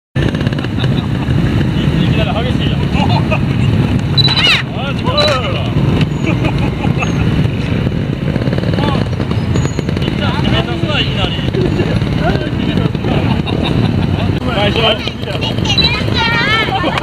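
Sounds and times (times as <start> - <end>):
child calling out: 15.5 - 16.8.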